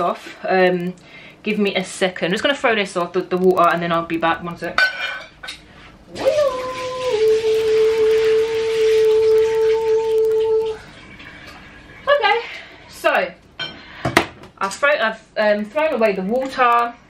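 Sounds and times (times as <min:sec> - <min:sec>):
steady pitched tone: 0:06.1 - 0:11.0
water pouring into sink: 0:06.1 - 0:12.2.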